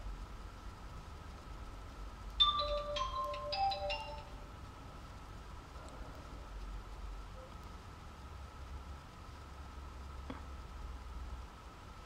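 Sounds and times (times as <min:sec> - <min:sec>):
electronic chime tune: 0:02.4 - 0:04.4.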